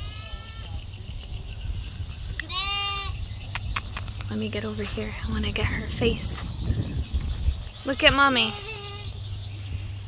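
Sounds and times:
lamb bleating: 0.0 - 0.7, 2.4 - 3.2, 8.4 - 9.1.

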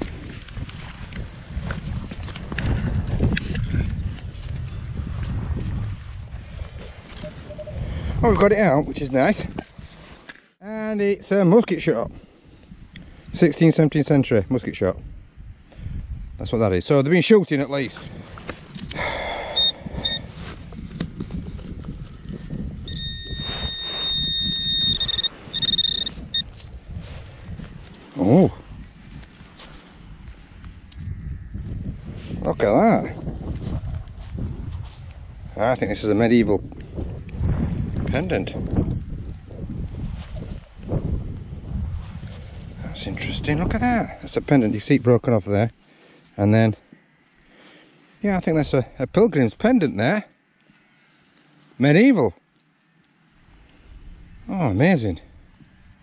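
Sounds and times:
wind rumble on microphone: 0.0 - 10.2, 11.9 - 13.5, 14.1 - 16.8, 17.9 - 45.7, 53.4 - 56.0
metal detector beeping: 7.1 - 7.8, 19.0 - 20.5, 22.8 - 26.6
metal detector high-pitched tone: 7.1 - 7.8, 19.1 - 20.4, 22.8 - 26.6
soil scraping by hand: 23.2 - 26.7.

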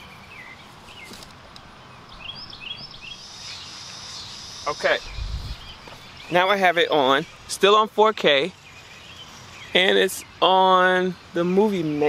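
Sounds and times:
outdoor background noise: 0.0 - 12.0
songbirds chirping: 0.0 - 12.0
steady high hiss: 0.0 - 12.0.

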